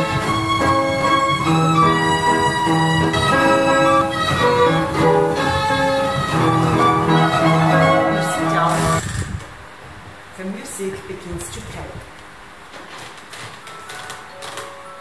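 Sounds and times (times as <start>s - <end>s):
violin melody over piano: 0.0s - 9.0s.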